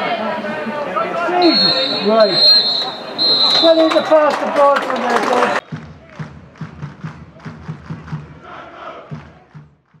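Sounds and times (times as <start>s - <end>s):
crowd chanting: 8.2s - 9.5s.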